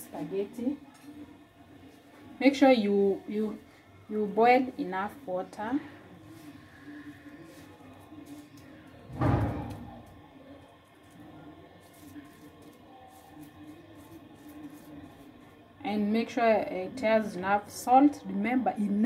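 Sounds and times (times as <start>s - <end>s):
loud dull thump: 9.1s - 9.9s.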